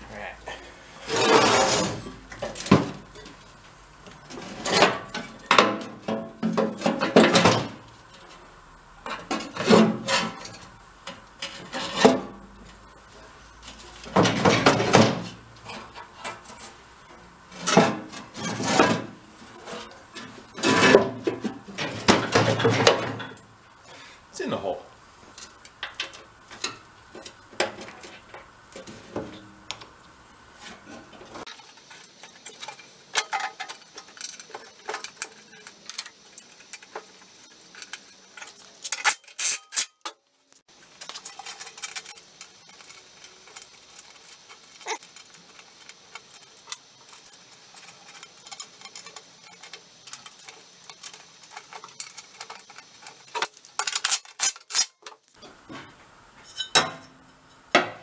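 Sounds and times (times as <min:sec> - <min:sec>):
metal parts and tools clanking: 0:30.7 - 0:55.5, 0:56.4 - 0:57.7.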